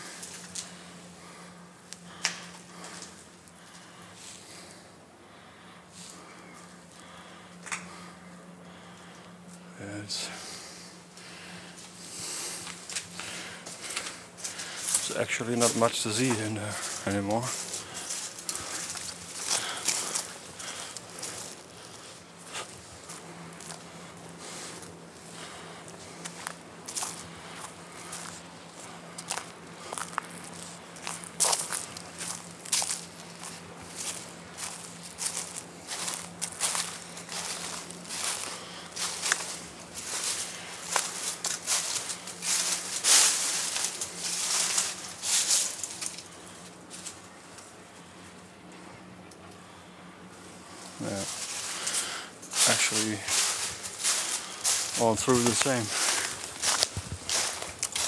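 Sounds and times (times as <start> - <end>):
footsteps crunching dry leaves: 0.0 - 4.8, 9.8 - 48.2, 50.2 - 58.0.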